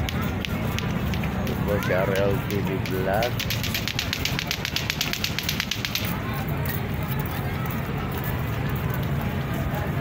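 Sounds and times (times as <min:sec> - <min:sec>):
rapid even clicking: 0:00.0 - 0:06.2.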